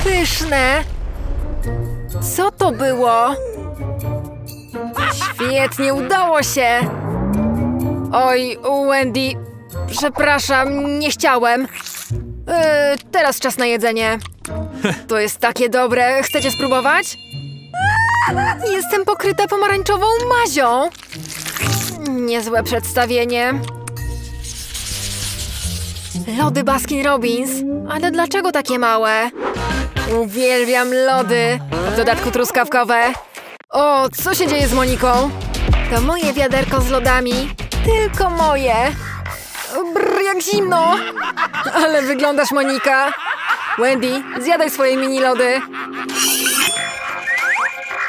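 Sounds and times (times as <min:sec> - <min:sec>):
background music: 0:00.0 - 0:33.1, 0:33.8 - 0:48.0
background music with bass line: 0:06.6 - 0:11.0, 0:34.4 - 0:39.4
quick upward-sliding tones: 0:06.8 - 0:08.3.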